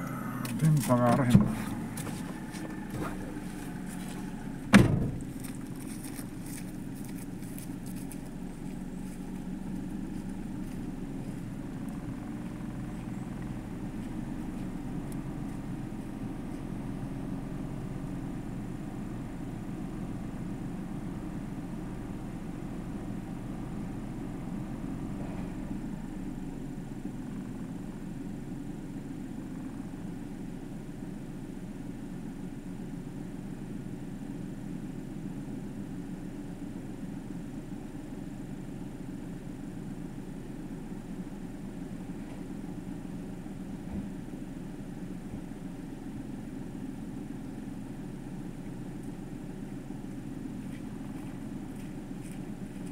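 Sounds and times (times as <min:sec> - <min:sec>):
car engine idling inside cabin: 0:00.0 - 0:52.9.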